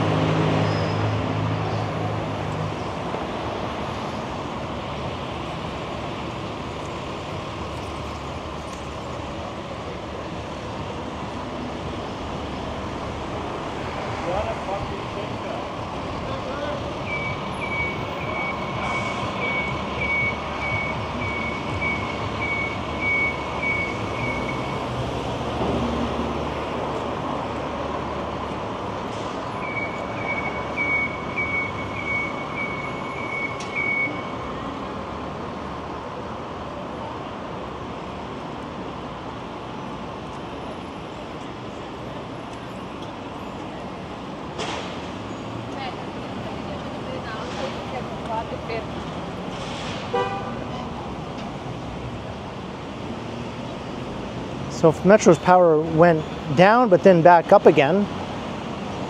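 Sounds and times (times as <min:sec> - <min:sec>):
street traffic: 0:00.0 - 0:59.0
electronic warning beeper: 0:17.0 - 0:24.6.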